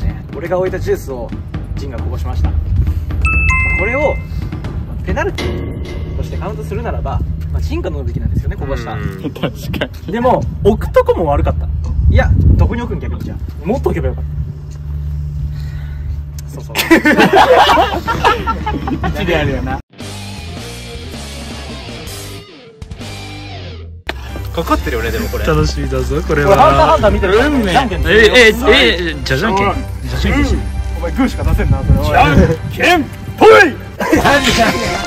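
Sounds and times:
men talking: 0.0s - 2.7s, 3.4s - 14.5s, 16.4s - 19.8s, 24.2s - 35.0s
background music: 0.0s - 10.6s, 17.0s - 35.0s.

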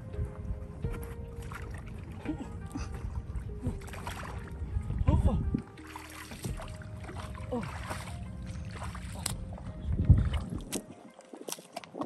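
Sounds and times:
bare feet squelching through mud: 5.8s - 12.0s.

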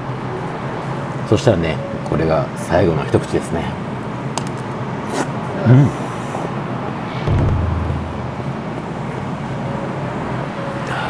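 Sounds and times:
road traffic: 3.8s - 11.0s
low rumble: 7.1s - 9.0s.

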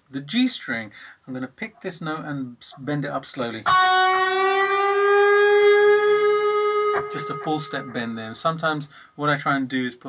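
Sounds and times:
electric guitar note bending: 3.7s - 8.4s.

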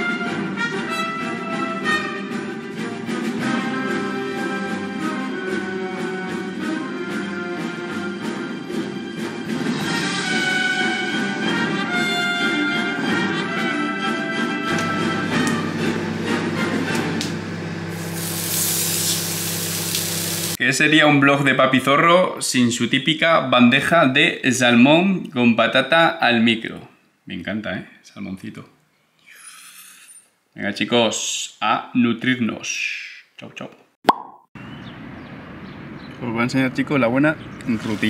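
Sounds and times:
background music: 0.0s - 17.7s
fish sizzling in oil: 17.8s - 20.6s
open-air ambience hiss: 17.9s - 20.7s
pop sound effect: 34.0s - 34.5s.

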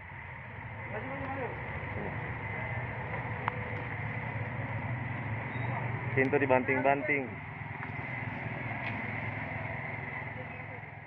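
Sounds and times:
street traffic hum: 0.0s - 11.0s.

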